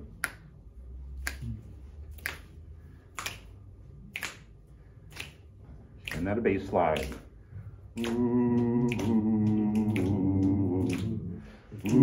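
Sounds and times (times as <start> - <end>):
finger snaps: 0.1 - 0.5, 1.1 - 6.3, 7.0 - 7.3, 7.9 - 12.0.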